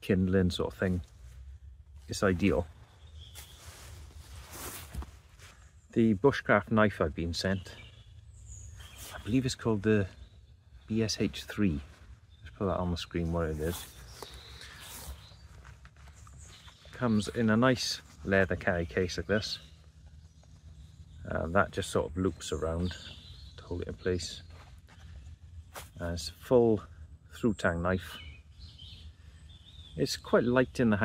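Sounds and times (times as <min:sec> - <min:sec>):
quiet outdoor background noise: 0:00.0 - 0:31.0
leather sheath rustling: 0:02.0 - 0:05.7, 0:13.6 - 0:17.0.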